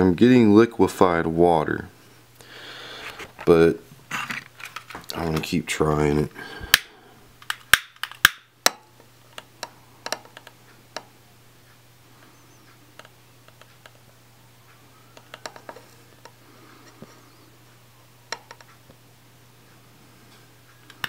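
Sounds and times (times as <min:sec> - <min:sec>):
faint steady low hum: 0:00.0 - 0:21.0.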